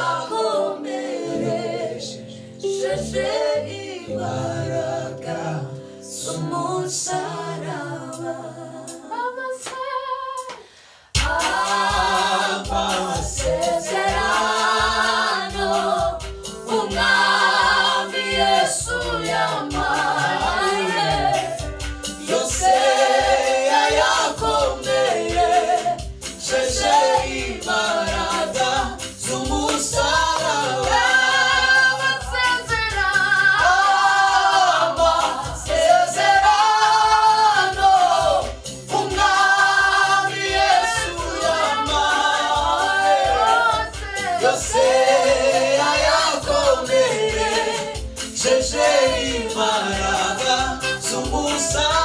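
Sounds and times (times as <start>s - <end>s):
group singing a cappella gospel: 0.0s - 52.0s.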